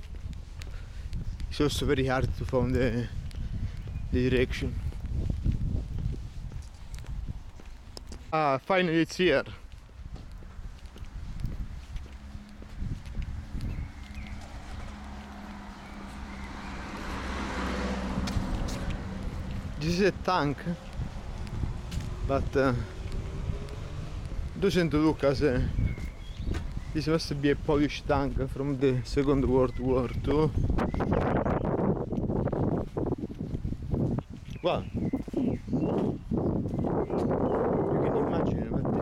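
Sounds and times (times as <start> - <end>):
footsteps on stone paving: 0.0 - 39.0
wind buffeting microphone: 0.0 - 39.0
low engine hum: 9.7 - 27.0
car passing: 10.0 - 28.0.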